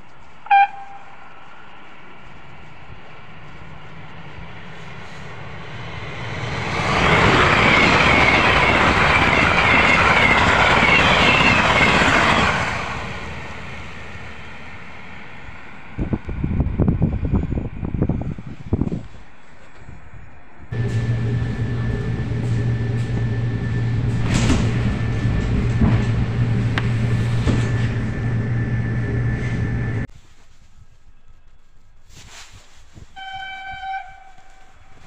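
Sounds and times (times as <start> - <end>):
train horn blast: 0.4 - 1.3, 33.2 - 35.0
wind gusts buffeting microphone: 1.9 - 30.1
train rushing past: 3.2 - 18.1, 20.7 - 30.1.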